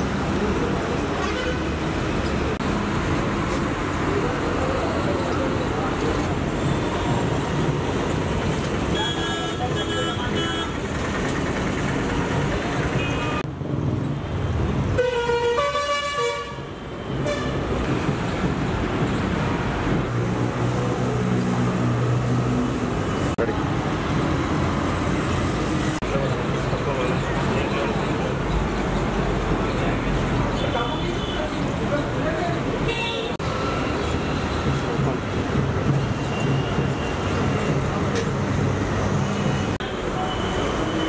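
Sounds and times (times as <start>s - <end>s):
street traffic: 0.0s - 41.0s
vehicle horns honking: 9.0s - 10.8s, 15.0s - 17.6s, 32.9s - 33.4s.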